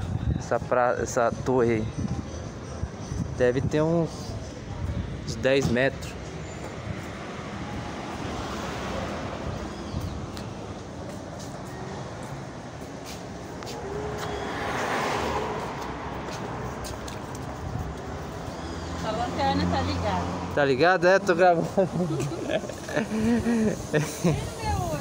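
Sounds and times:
rumble of road traffic: 0:00.0 - 0:25.0
vehicle passing close: 0:12.6 - 0:25.0.

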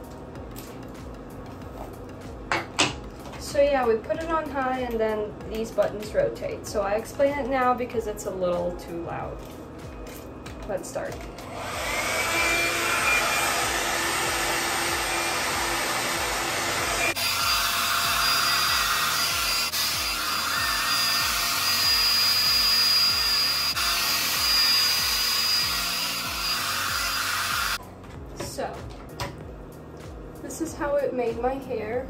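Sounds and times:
hot-air brush blowing: 0:11.4 - 0:27.8.

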